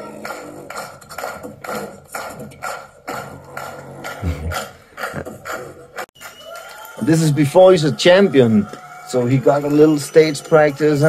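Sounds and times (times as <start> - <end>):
beatboxing through speakers: 0.0 - 6.1
deep bass sound: 4.2 - 4.6.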